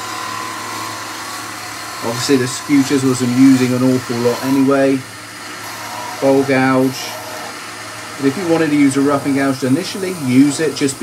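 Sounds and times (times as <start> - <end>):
wood lathe cutting workpiece: 0.0 - 11.0.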